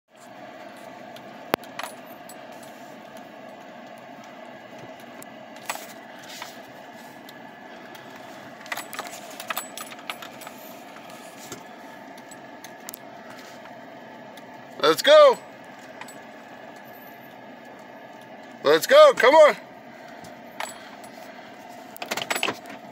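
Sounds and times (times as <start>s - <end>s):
vehicle humming: 0.1s - 22.9s.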